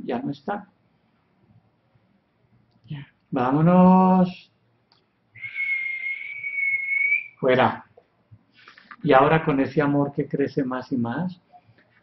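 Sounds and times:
person whistling high note: 5.4s - 7.4s.

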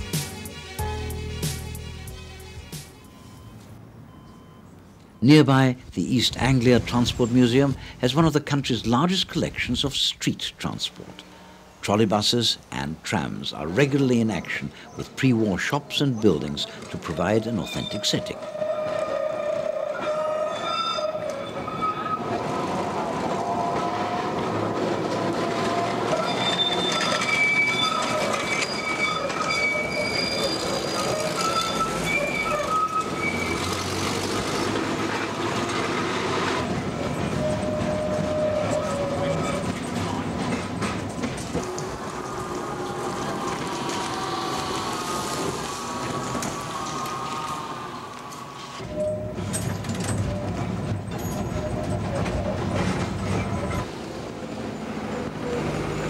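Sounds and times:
tram running rumble: 4.4s - 56.0s
tram wheels squealing: 13.5s - 56.0s.

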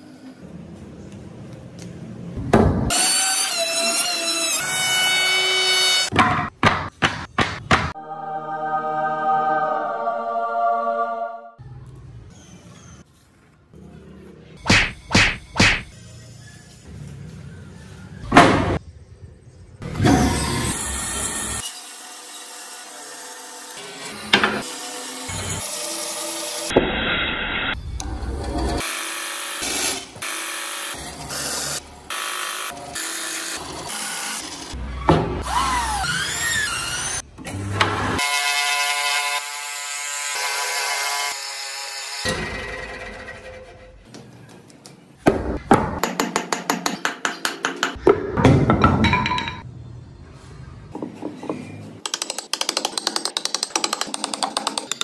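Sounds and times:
sharp strikes on wood: 14.7s - 15.9s.

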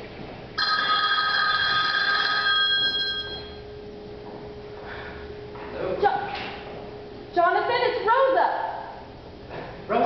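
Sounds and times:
bright electronic ring: 0.6s - 3.8s.

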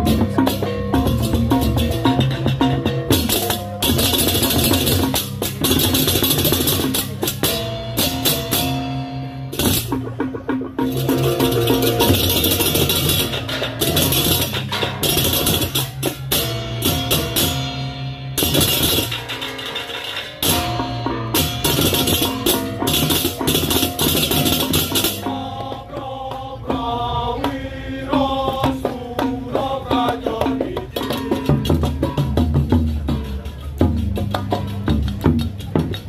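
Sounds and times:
drums: 0.0s - 36.0s.

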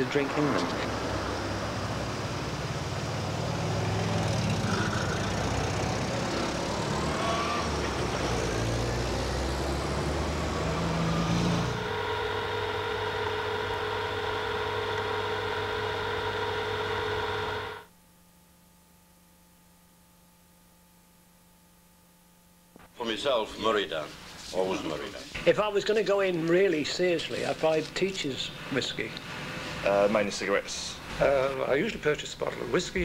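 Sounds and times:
street traffic road noise: 0.0s - 15.0s, 28.5s - 33.0s
car engines rumbling: 0.0s - 15.5s
steady hum of held tones: 0.0s - 24.0s.

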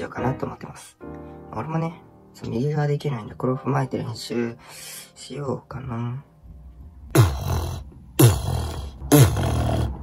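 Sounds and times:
inward lip bass buzzing: 7.1s - 10.0s.

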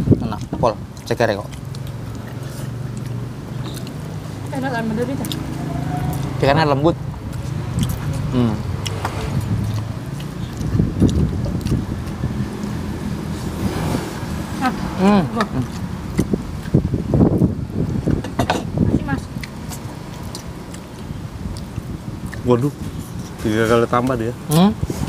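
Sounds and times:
low background rumble: 0.0s - 24.5s
chewing food: 0.3s - 6.4s, 7.1s - 13.4s, 15.4s - 18.2s, 19.2s - 23.4s.

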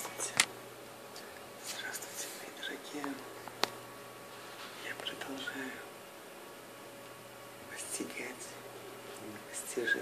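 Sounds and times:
man whispering: 0.0s - 0.4s, 1.1s - 3.3s, 4.7s - 5.9s, 7.7s - 10.0s.

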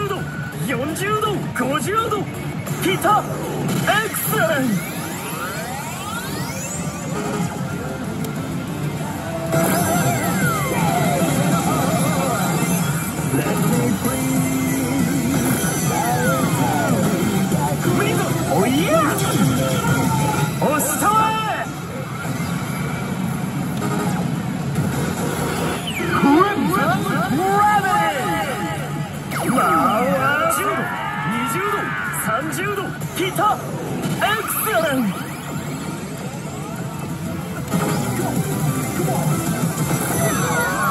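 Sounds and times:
slot machine music: 0.0s - 30.6s, 32.9s - 40.9s.

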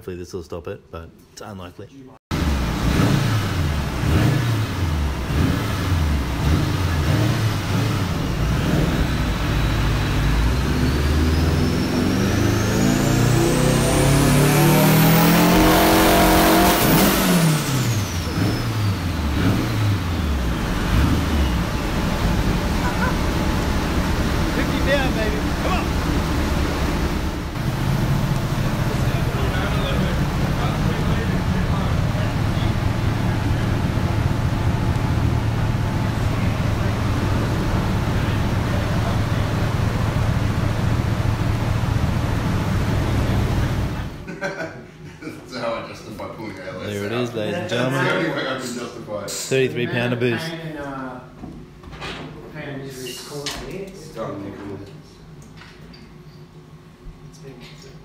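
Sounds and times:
car engine revving: 2.3s - 44.3s
high turbo whine: 2.3s - 44.3s.

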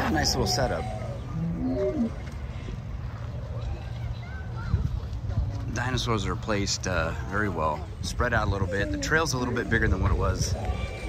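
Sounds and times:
low-pitched animal call: 0.0s - 2.3s, 8.4s - 11.0s.

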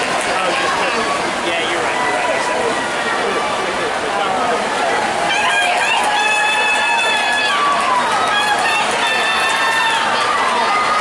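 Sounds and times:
crowd noise: 0.0s - 11.0s
spectators shouting and cheering: 0.0s - 11.0s.

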